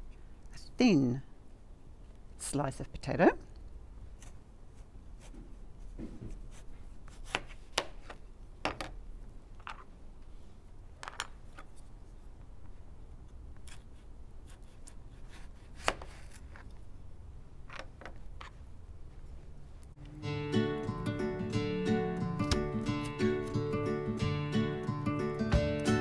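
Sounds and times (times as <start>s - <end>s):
knife slicing potato: 6.3s - 7.9s, 13.6s - 16.7s.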